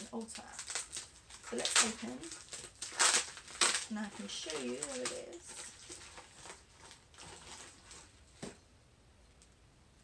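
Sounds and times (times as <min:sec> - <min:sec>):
packet rustling and tapping: 0:00.0 - 0:08.6.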